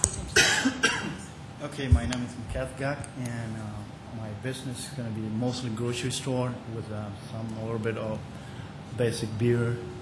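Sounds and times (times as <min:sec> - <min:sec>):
man coughing: 0:00.3 - 0:01.3.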